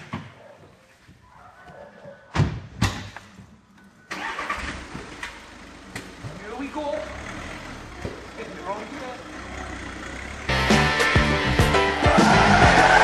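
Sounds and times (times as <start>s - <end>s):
car engine starting and idling: 4.0s - 13.0s.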